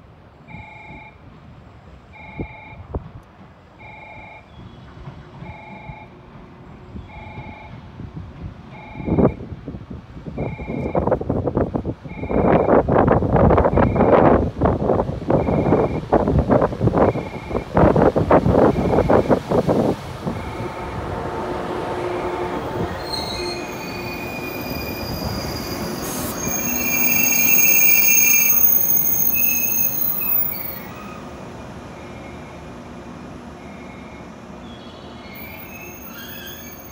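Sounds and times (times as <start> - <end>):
wheels rattling and squealing: 23.0 - 31.4, 33.7 - 36.9.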